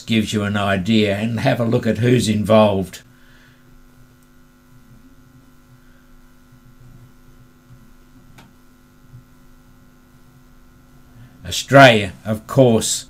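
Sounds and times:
electrical hum: 0:00.0 - 0:13.0.

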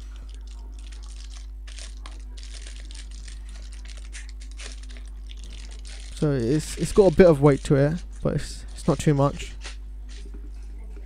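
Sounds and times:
plastic bag crinkling: 0:00.0 - 0:09.5
steady low hum: 0:00.0 - 0:11.0.

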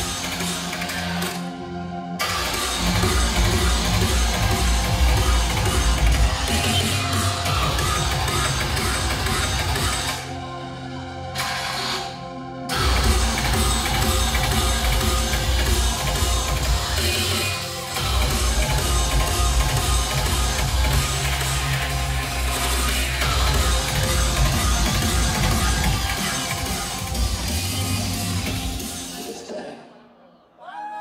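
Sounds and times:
drum and bass music with heavy bass: 0:00.0 - 0:29.8.

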